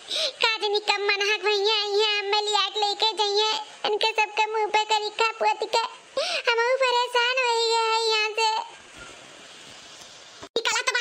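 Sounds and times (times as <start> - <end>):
faint hiss: 0.0 - 11.0
high-pitched cartoon woman's voice: 0.3 - 8.7, 10.6 - 11.0.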